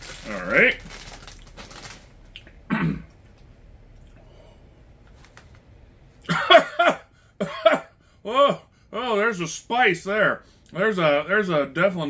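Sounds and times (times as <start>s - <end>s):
man clearing his throat: 2.7s - 3.1s, 6.3s - 8.0s
man coughing: 2.7s - 3.1s, 6.3s - 8.0s.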